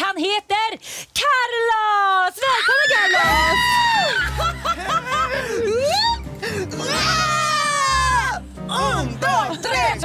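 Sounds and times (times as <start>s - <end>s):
women screaming with delight: 2.6s - 4.5s, 6.8s - 8.4s.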